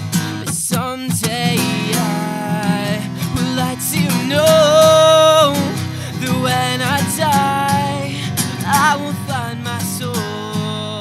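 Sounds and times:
acoustic guitar strumming: 0:00.0 - 0:11.0
man singing: 0:00.2 - 0:11.0.

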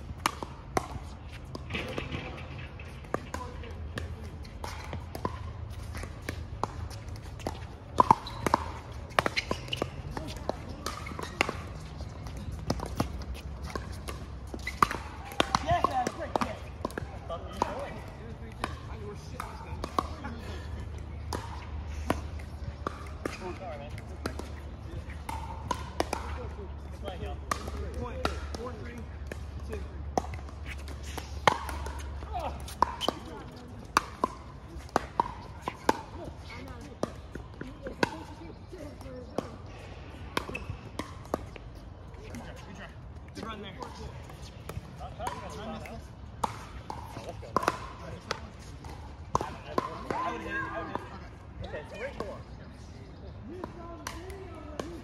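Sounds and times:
players chattering: 0:00.0 - 0:55.0
ball bouncing on hard court: 0:00.2 - 0:42.7, 0:43.8 - 0:51.1.

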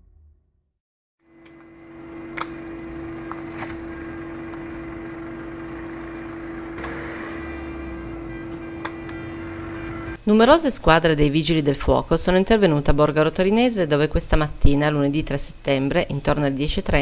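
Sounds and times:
motor humming: 0:01.3 - 0:10.2.

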